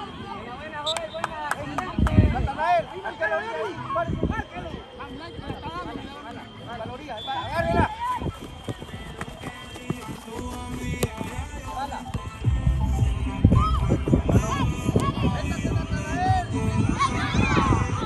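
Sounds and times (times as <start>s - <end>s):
people shouting and calling: 2.6s - 10.9s, 13.5s - 18.0s
background music: 9.8s - 18.0s.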